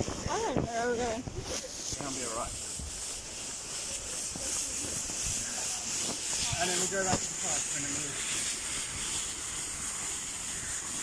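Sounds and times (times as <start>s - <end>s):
blower fan hissing air: 0.0s - 11.0s
nylon rubbing microphone: 0.0s - 11.0s.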